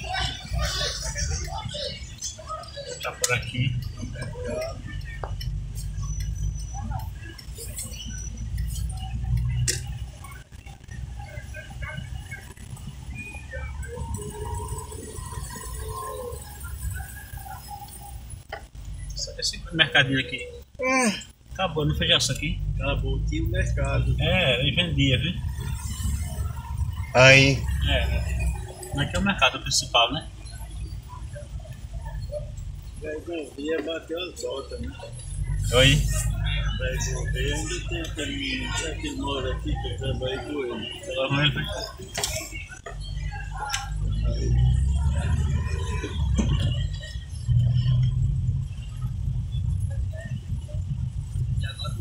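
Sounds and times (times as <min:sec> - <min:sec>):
car engine and tyres rumbling: 0:00.0 - 0:52.0.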